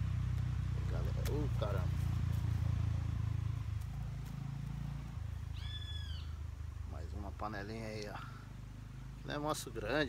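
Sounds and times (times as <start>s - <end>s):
steady low hum: 0.0s - 10.0s
short high bird call: 5.5s - 6.4s.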